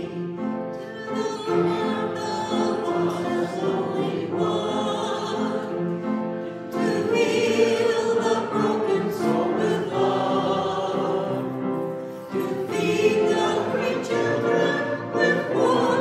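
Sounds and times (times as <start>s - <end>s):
congregation singing a hymn: 0.0s - 16.0s.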